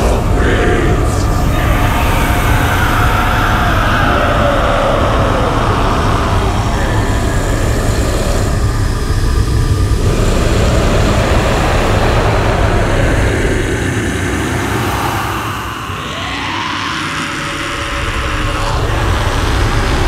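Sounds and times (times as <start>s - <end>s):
choir of growling voices: 0.0s - 20.0s.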